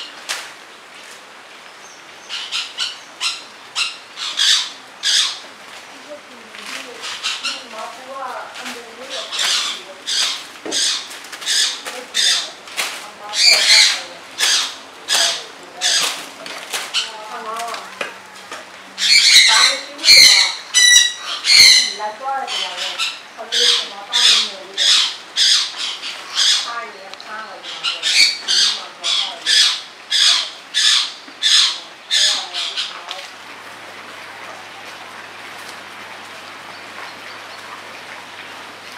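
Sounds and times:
bird squawking: 2.2 - 5.4, 6.9 - 7.9, 9.0 - 12.6, 13.2 - 16.2, 19.0 - 33.3.

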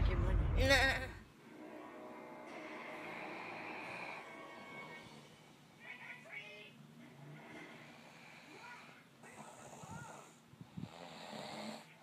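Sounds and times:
breathy exhale: 2.5 - 5.5
man snoring: 2.6 - 5.4, 7.2 - 12.0.

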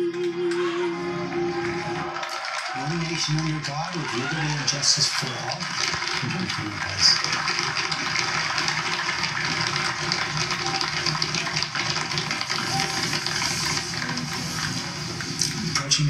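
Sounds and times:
audience applauding: 0.0 - 16.0.

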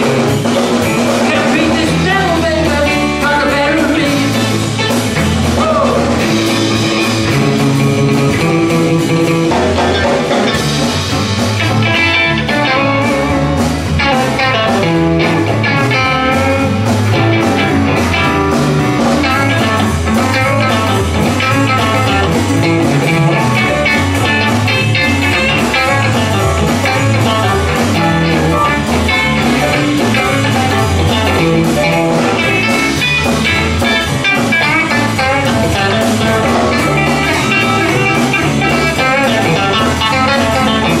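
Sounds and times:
electric guitar: 0.0 - 41.0
live blues band playing: 0.0 - 41.0.

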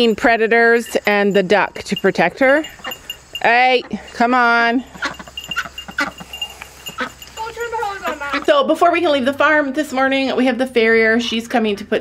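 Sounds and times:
goat bleating: 4.9 - 8.5.

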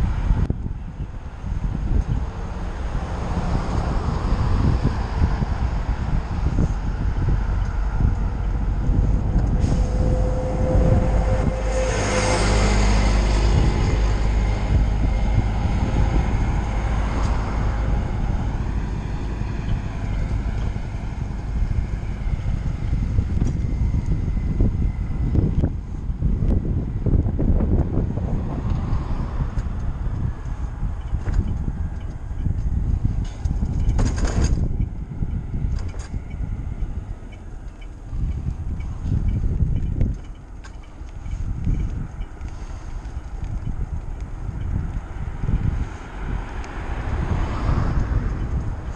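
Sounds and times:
road noise: 0.0 - 48.9
traffic passing: 0.0 - 48.9
wind rumbling over microphone: 0.0 - 48.9.

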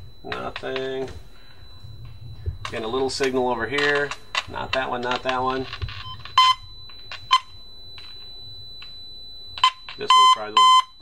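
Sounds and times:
faint steady high whine: 0.0 - 11.0
short beeps from tone probe: 0.0 - 11.0.

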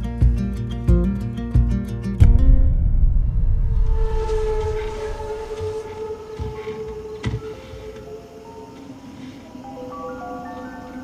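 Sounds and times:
short low hit: 2.2 - 5.8
low rumble: 2.2 - 6.0
horn-like droning tone: 3.7 - 8.7.

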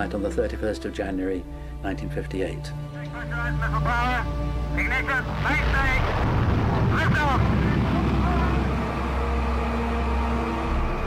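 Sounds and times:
ominous background music: 0.0 - 11.0
rocket lifting off rumble: 5.2 - 9.7.

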